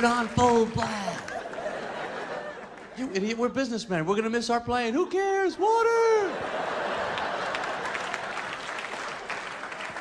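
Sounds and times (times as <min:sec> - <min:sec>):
audience applauding: 0:00.0 - 0:02.9, 0:06.8 - 0:10.0.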